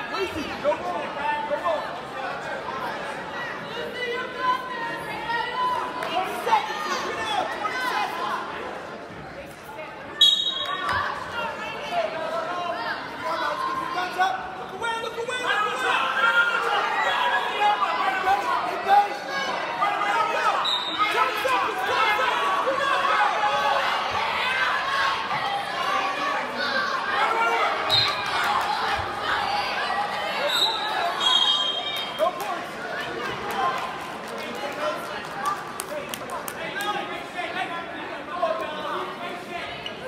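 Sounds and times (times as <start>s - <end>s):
referee's whistle: 10.2s - 10.8s, 20.6s - 21.1s, 27.9s - 28.2s, 30.4s - 32.1s.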